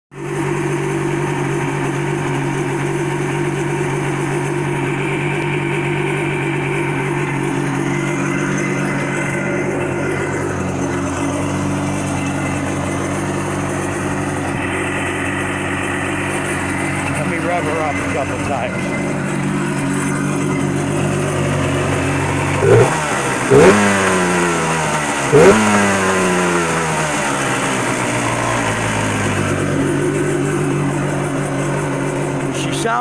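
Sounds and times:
two-stroke engine idling: 0.1s - 33.0s.

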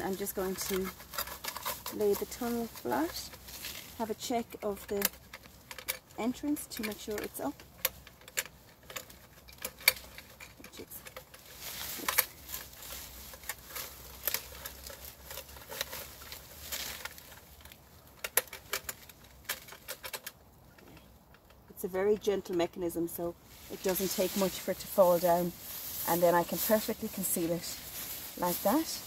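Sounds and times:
grass and bramble rustling: 0.0s - 29.0s.

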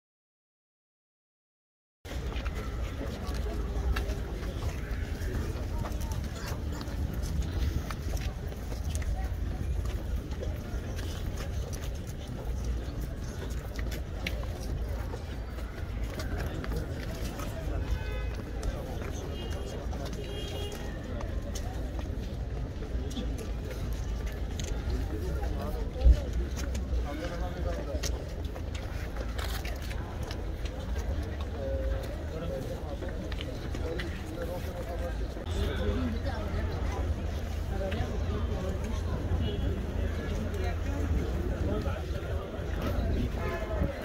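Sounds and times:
footsteps on stone steps: 2.1s - 44.0s
men murmuring and talking: 2.2s - 44.0s.

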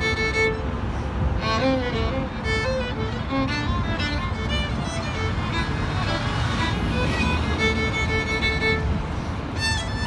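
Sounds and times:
road traffic rumble: 0.0s - 10.0s
solo violin: 0.0s - 10.0s.

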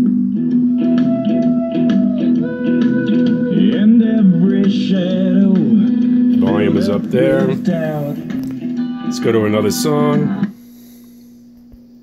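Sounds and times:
guitar music through radio speaker: 0.0s - 11.2s.

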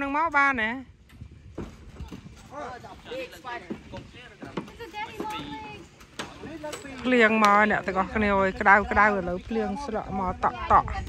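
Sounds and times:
people talking: 6.4s - 11.0s.

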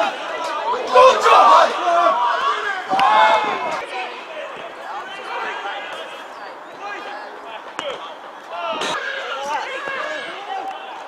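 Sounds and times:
people shouting: 0.0s - 6.1s, 6.8s - 11.0s.

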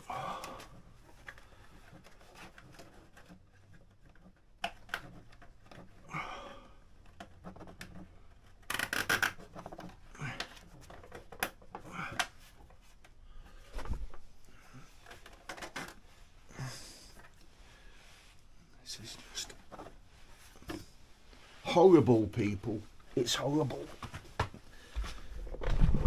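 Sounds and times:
clicks of plastic and metal parts: 1.2s - 5.8s.

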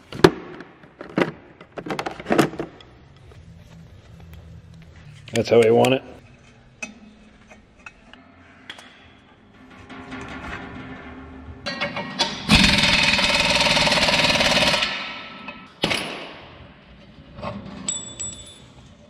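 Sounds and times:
air impact wrench hammering: 12.2s - 16.4s.

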